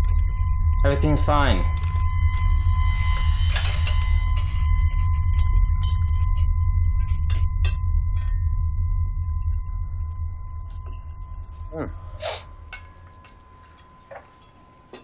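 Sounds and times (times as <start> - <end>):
deep low drone: 0.0 - 14.1
thin sustained high tone: 0.0 - 15.0
faint clinks: 9.3 - 15.0.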